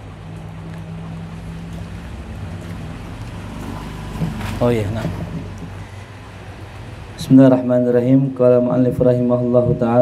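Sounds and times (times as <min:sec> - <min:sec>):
rushing background noise: 0:00.0 - 0:10.0.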